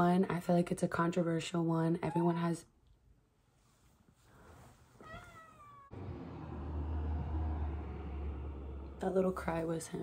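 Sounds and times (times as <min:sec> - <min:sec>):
cat meowing: 0:05.0 - 0:06.0
low steady rumble: 0:05.9 - 0:10.0.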